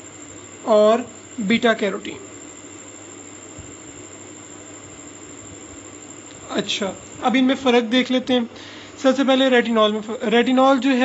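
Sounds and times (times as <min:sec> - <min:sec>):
faint low hum: 0:00.0 - 0:11.0
steady background hiss: 0:00.0 - 0:11.0.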